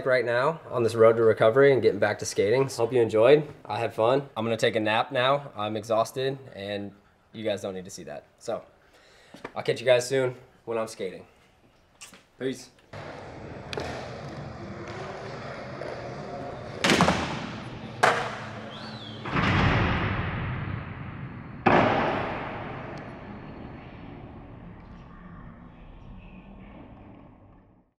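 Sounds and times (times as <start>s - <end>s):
heavy logo hits: 19.2s - 24.7s.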